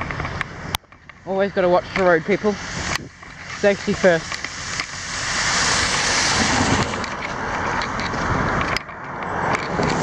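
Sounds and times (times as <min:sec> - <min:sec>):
vehicle tyre noise: 0:00.0 - 0:10.0
car passing on wet road: 0:01.3 - 0:10.0.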